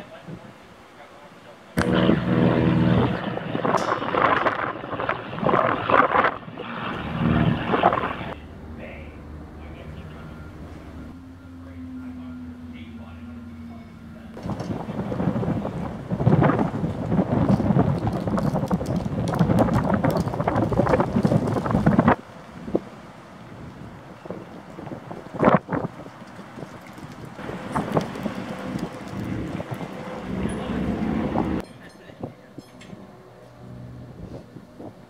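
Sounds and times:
wind buffeting microphone: 1.8 - 11.2, 13.3 - 35.0.

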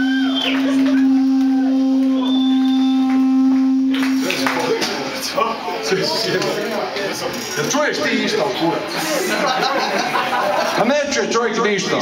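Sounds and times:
amplified instrument holding a note: 0.0 - 5.2.

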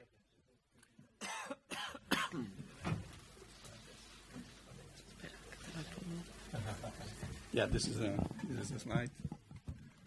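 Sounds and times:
person coughing: 1.2 - 2.6.

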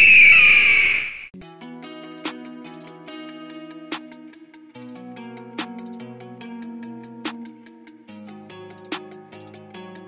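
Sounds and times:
bird of prey screech: 0.0 - 1.3
plucked music: 1.4 - 10.0.

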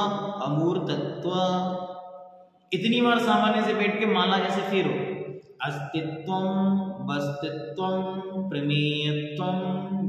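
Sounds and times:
man chanting: 0.0 - 1.8, 2.7 - 10.0.

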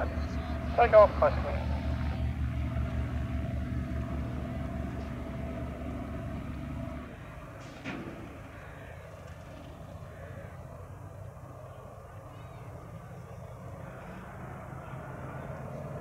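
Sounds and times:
radial aircraft engine drone: 0.0 - 16.0.

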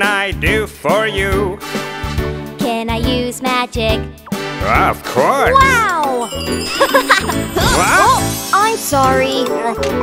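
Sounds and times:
backing music: 0.0 - 10.0.

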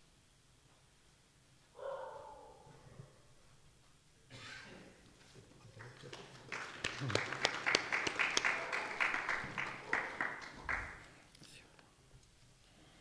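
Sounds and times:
audience applause: 5.7 - 11.2.

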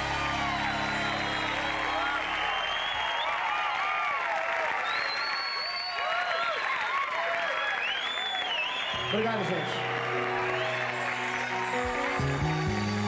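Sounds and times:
high shouts: 0.0 - 11.2
audience applauding and cheering: 0.0 - 13.0.

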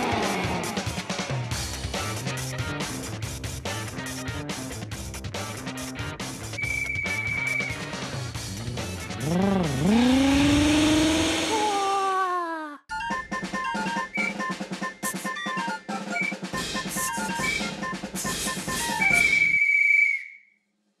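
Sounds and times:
voice imitating engine: 9.2 - 12.9
jingle with drums and bells: 12.9 - 19.3.

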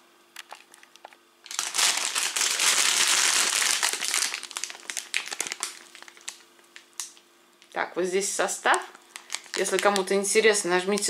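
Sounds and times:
plastic bag crinkling: 0.4 - 7.2, 8.9 - 11.0.

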